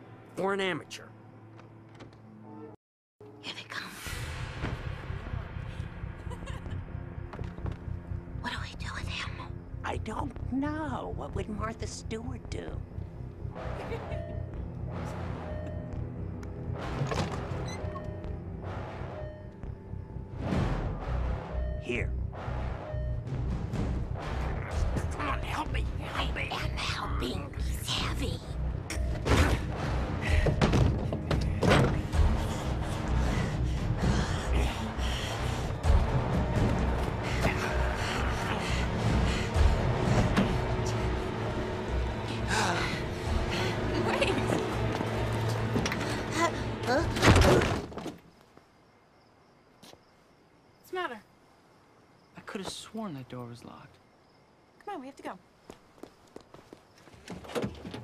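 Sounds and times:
dark music score: 0.0 - 47.8
steady low drone: 18.0 - 46.9
breathy vocal sounds: 31.4 - 35.9, 37.1 - 41.2.

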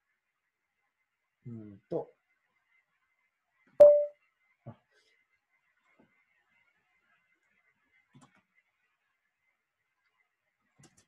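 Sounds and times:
short loud ringing tone: 3.8 - 4.1.

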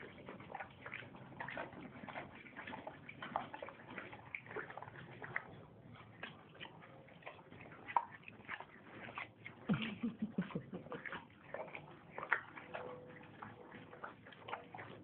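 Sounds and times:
horse chewing: 0.0 - 15.0.

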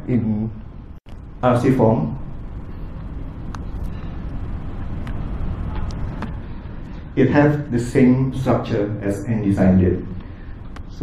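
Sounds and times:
low room noise rumble: 0.0 - 11.0.

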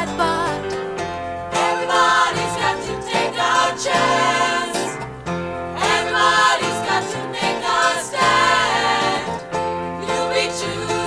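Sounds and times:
vocal group singing in harmony: 0.0 - 0.8, 1.5 - 5.1, 5.7 - 11.0
instrumental accompaniment: 0.0 - 11.0.

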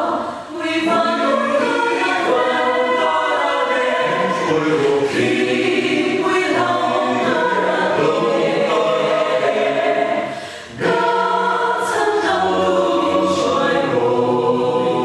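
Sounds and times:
mixed choir singing gospel: 0.0 - 15.0.

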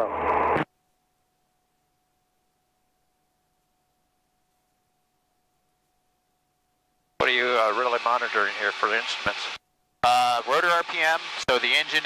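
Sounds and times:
faint steady tone: 0.0 - 11.8.

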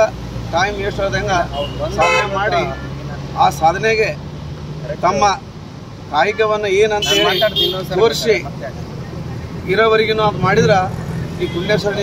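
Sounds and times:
man speaking: 0.0 - 4.2, 4.8 - 5.4, 6.1 - 12.0
road traffic: 0.0 - 12.0
vehicle engine humming: 0.0 - 12.0.

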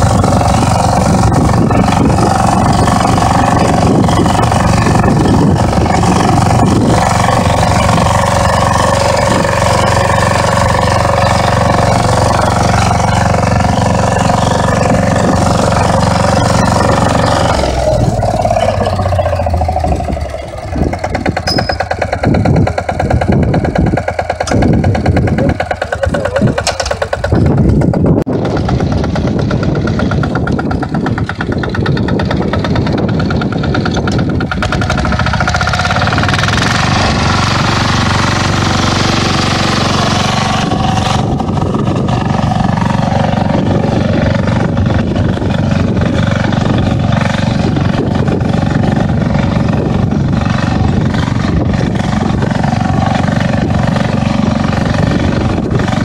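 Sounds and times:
tiller engine running: 0.0 - 56.0.

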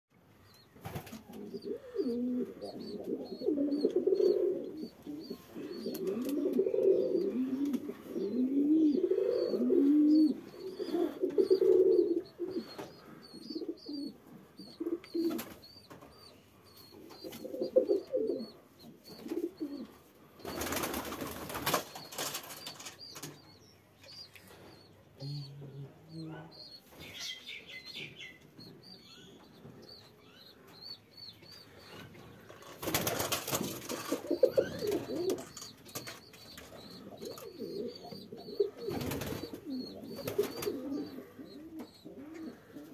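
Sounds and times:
faint high chirping: 0.4 - 42.9
pigeons cooing: 0.9 - 42.9
wing flapping: 20.4 - 23.3, 32.6 - 35.4, 38.9 - 40.9.

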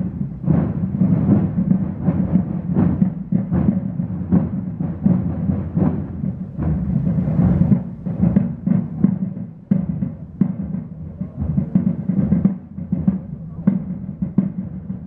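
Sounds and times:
marching drums beating: 0.0 - 15.0.

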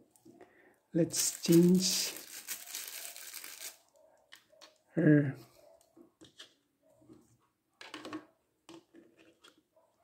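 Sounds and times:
hands rustling plastic toy: 1.0 - 4.8.

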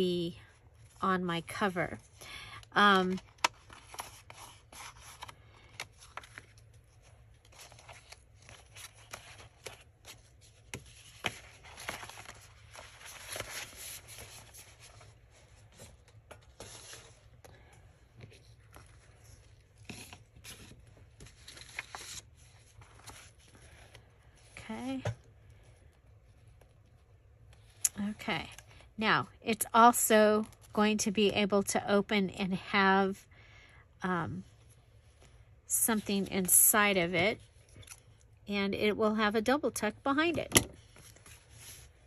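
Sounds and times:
paper rustling: 3.2 - 24.1.

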